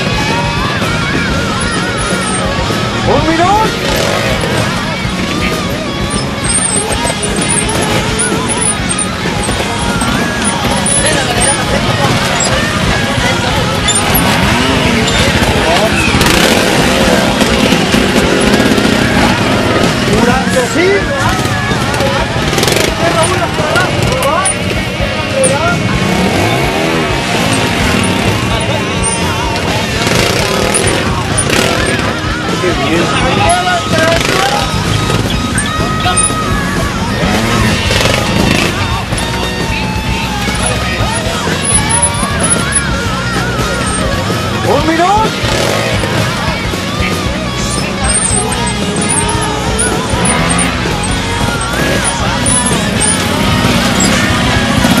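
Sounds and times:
crowd shouting and cheering: 0:00.0 - 0:55.0
motorcycle engine: 0:00.0 - 0:55.0.

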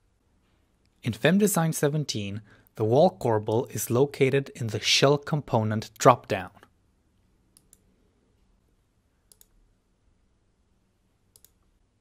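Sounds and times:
computer mouse clicks: 0:07.5 - 0:07.9, 0:09.3 - 0:09.6, 0:11.3 - 0:11.7.

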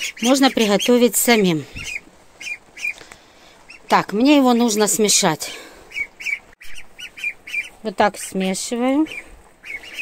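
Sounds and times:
ducklings peeping: 0:00.0 - 0:05.2, 0:05.9 - 0:10.0.

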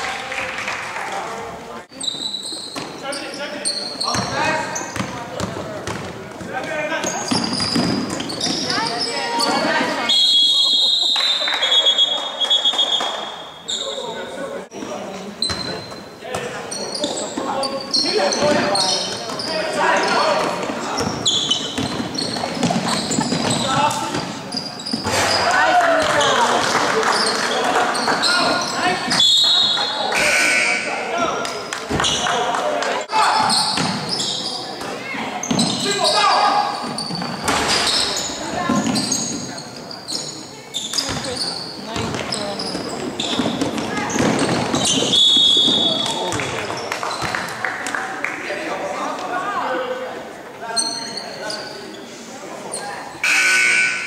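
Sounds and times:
sneakers squeaking: 0:01.9 - 0:32.5, 0:33.2 - 0:47.6, 0:50.6 - 0:54.0
basketball bouncing on wooden floor: 0:05.0 - 0:08.6, 0:41.9 - 0:45.1
players calling out: 0:15.0 - 0:47.3.

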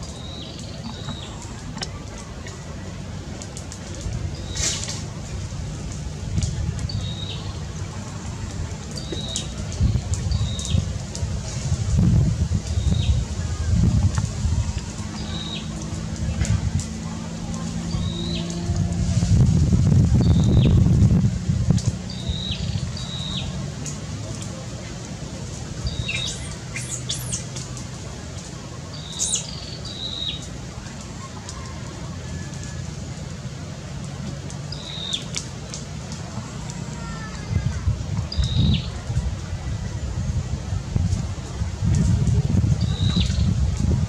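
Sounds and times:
steady low rumble: 0:00.0 - 0:44.0
low rumble: 0:09.6 - 0:26.0.

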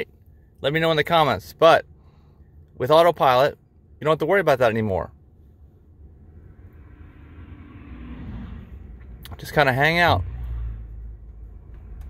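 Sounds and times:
road noise inside car: 0:00.0 - 0:12.0.

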